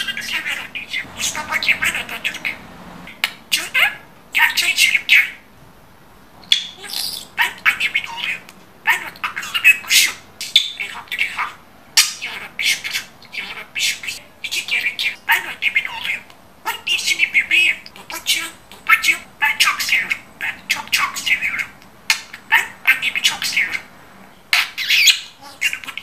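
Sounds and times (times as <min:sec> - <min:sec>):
budgerigar chattering: 0:00.0 - 0:05.4, 0:06.4 - 0:23.9, 0:24.5 - 0:26.0.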